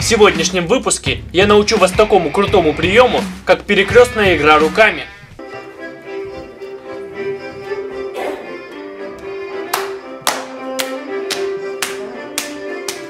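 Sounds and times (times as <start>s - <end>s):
instrumental dance music: 0.0s - 13.0s
people clapping hands: 8.7s - 13.0s.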